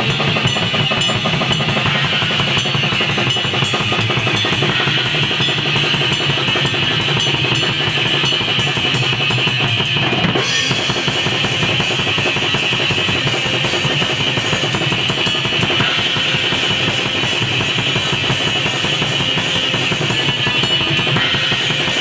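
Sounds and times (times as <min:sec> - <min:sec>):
electric guitar: 0:00.0 - 0:22.0
metal band playing fast: 0:00.0 - 0:22.0
rapid kick drum: 0:00.0 - 0:22.0.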